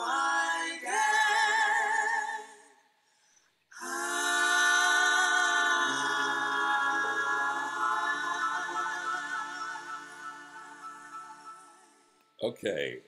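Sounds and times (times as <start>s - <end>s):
female vocal trio singing harmony: 0.0s - 2.8s, 3.7s - 12.2s.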